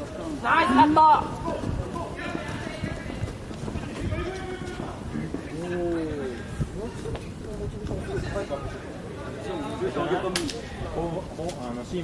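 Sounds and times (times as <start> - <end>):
running footsteps on turf: 0.0 - 10.0
faint distant voices: 0.0 - 12.0.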